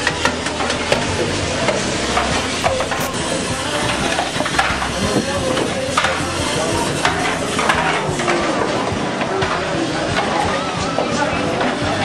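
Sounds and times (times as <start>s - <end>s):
dishes and utensils clattering: 0.0s - 12.0s
hubbub of distant voices: 0.0s - 12.0s.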